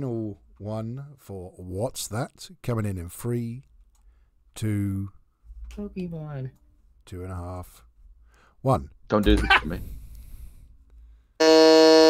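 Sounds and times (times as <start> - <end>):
electronic quiz buzzer: 11.4 - 12.0.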